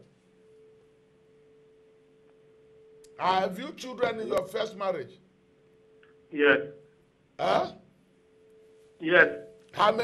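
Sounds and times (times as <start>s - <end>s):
faint steady tone hum: 0.0s - 10.0s.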